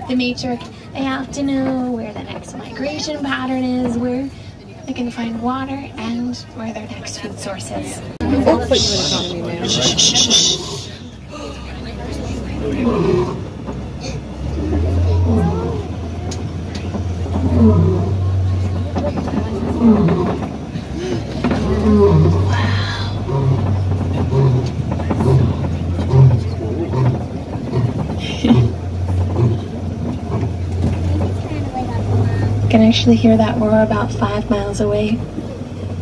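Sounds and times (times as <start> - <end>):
truck engine idling hum: 0.0 - 36.0
lion grunting: 12.6 - 13.5, 17.3 - 18.4, 21.0 - 30.7
lion roaring: 12.6 - 13.5, 14.5 - 16.0, 17.3 - 18.5, 19.5 - 31.0.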